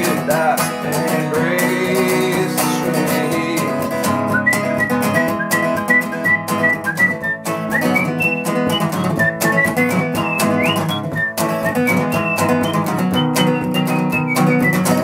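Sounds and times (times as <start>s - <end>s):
acoustic guitar playing: 0.0s - 15.0s
man whistling a melody: 4.0s - 15.0s.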